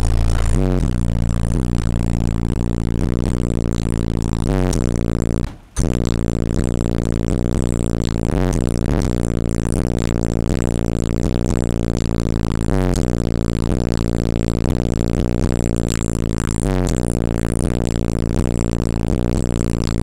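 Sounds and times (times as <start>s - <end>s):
hip-hop with heavy bass from car: 0.0s - 20.0s.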